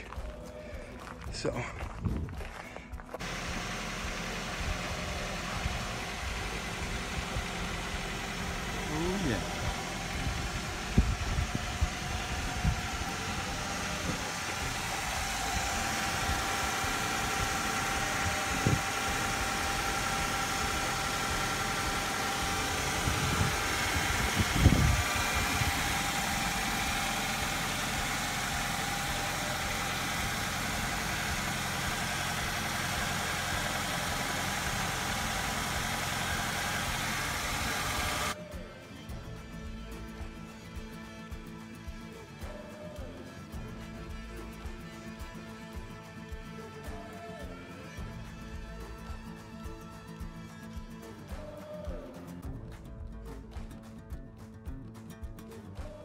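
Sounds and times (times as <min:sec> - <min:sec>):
car engine idling: 0:00.0 - 0:54.1.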